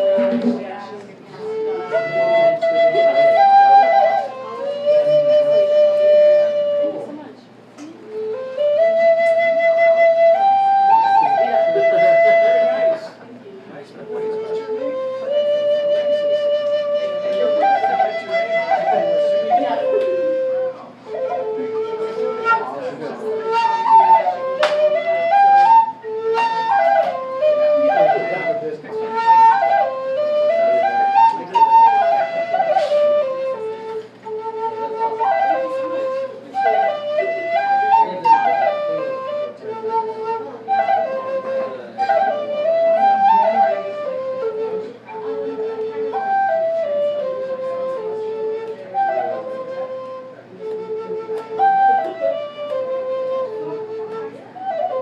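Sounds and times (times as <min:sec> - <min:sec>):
flute playing slow melody: 0:00.0 - 0:13.2, 0:14.0 - 0:55.0.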